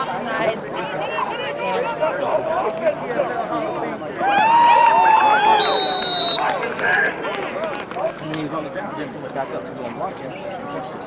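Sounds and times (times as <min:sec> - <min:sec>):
players talking and calling out: 0:00.0 - 0:11.0.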